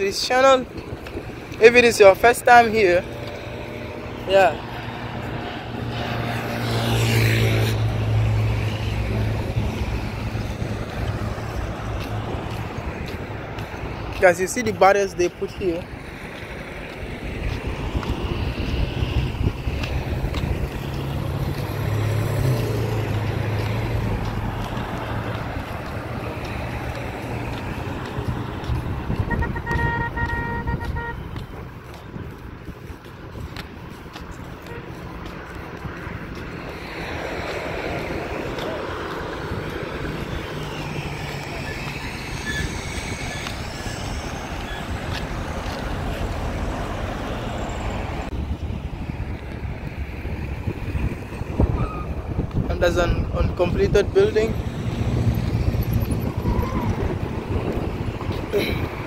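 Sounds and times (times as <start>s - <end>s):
vehicles passing: 0.0s - 59.0s
car horn: 29.2s - 31.4s, 34.6s - 35.0s.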